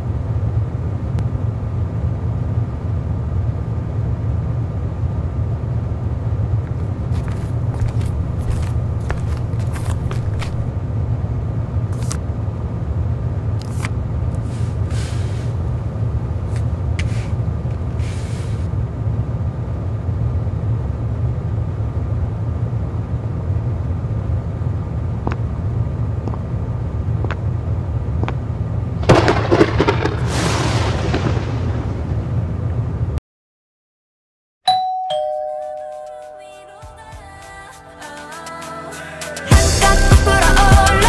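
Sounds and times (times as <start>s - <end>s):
steady low rumble: 0.0s - 33.2s.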